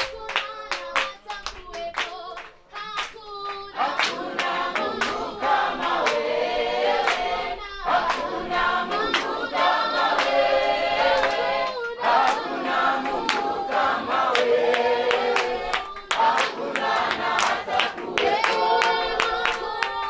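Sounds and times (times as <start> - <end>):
rhythmic hand clapping: 0.0 - 20.0
congregation singing: 2.8 - 20.0
person singing: 15.1 - 20.0.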